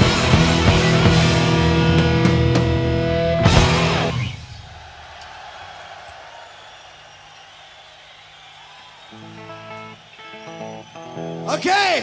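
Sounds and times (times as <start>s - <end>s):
rock band chord: 0.0s - 4.4s
concert crowd noise: 0.0s - 12.0s.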